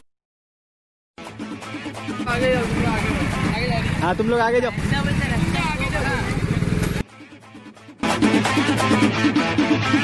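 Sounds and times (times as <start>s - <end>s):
background music: 1.2s - 10.0s
voices: 2.3s - 6.9s
scooter and motorcycle engines: 2.3s - 7.0s.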